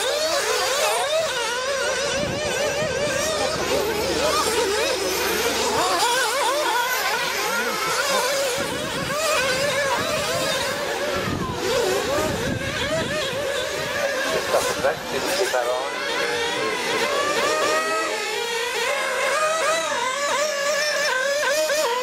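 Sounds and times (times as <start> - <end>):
rc car engines whining: 0.0 - 22.0.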